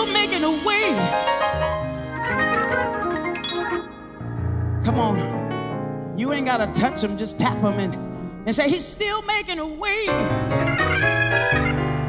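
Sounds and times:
woman singing gospel: 0.0s - 1.2s, 6.4s - 10.3s
sustained keyboard accompaniment: 0.0s - 8.7s, 10.1s - 12.0s.

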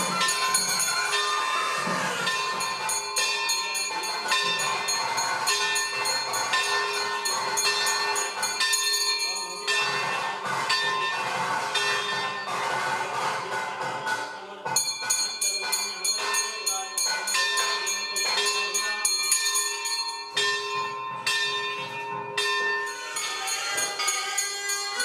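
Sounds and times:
temple bells clanging: 0.0s - 13.2s, 14.7s - 25.0s.

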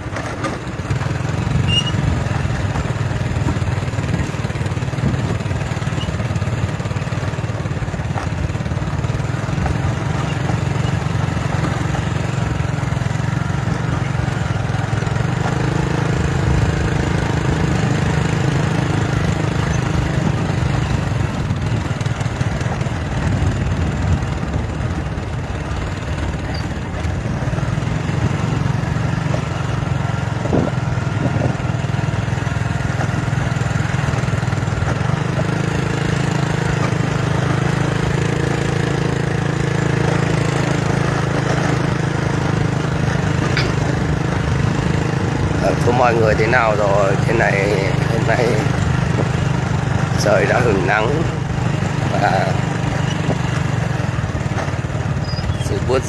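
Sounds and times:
small motorcycle engine running: 0.0s - 56.0s.

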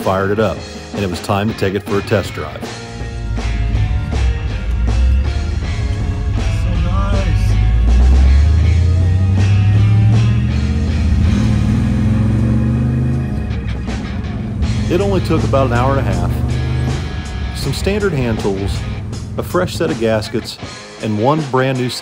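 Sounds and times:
background rock music: 0.0s - 22.0s
car engine accelerating: 2.3s - 20.7s.

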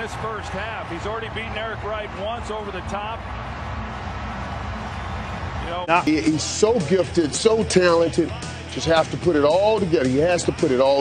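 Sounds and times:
stadium crowd cheering: 0.0s - 8.2s.

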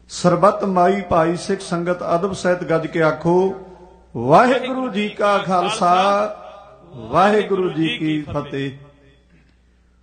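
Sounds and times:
man chanting: 0.2s - 9.2s.

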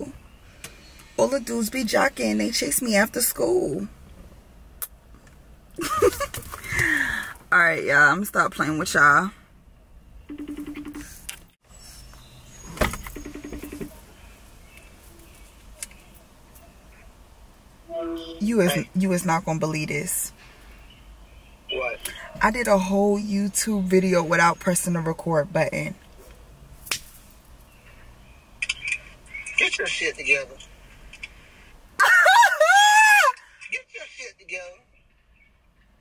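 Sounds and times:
steady background hiss: 14.0s - 24.4s.

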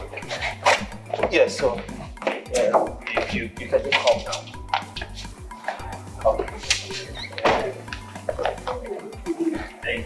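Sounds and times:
background film music: 0.0s - 10.0s.

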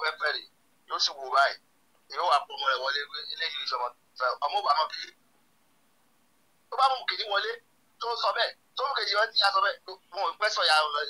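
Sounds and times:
person speaking over telephone: 0.0s - 5.2s.

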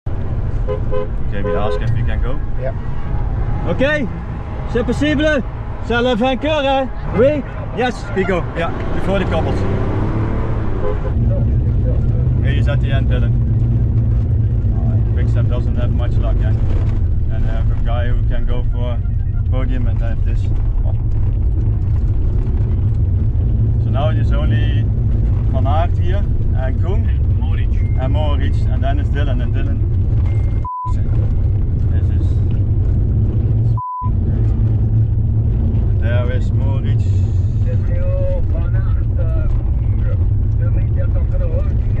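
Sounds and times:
car engine and road noise: 0.0s - 42.0s
high bleep: 30.2s - 31.0s, 33.8s - 34.2s.

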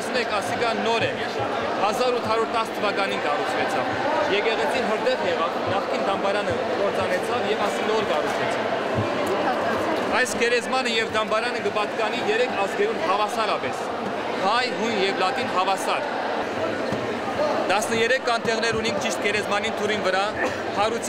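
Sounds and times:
man speaking: 10.1s - 16.0s.

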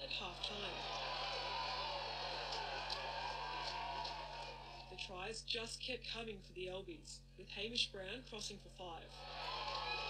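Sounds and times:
crowd cheering: 0.0s - 5.0s, 9.2s - 10.0s
scattered clapping: 0.5s - 4.9s.

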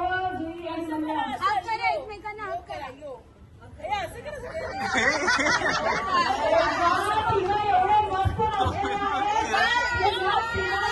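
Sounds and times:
chatter of voices: 4.2s - 10.9s.

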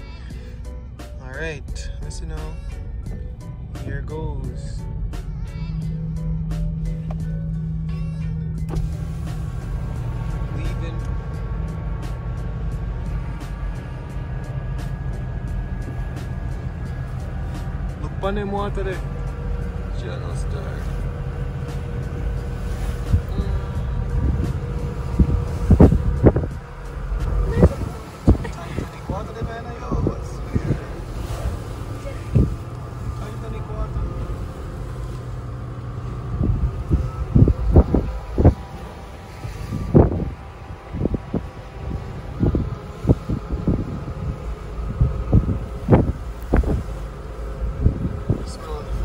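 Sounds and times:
ferry engine rumble: 0.0s - 49.0s.

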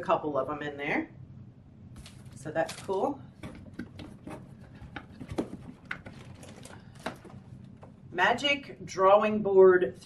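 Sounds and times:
packaging rustling and knocking: 2.0s - 7.9s.

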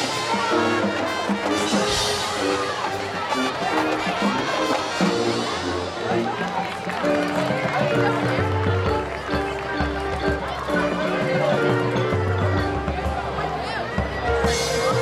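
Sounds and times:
marching band playing: 0.0s - 15.0s.

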